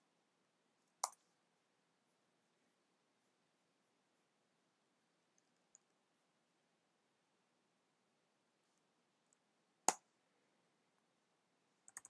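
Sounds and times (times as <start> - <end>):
faint room hiss: 0.0 - 12.0
small sharp clicks: 1.0 - 1.2.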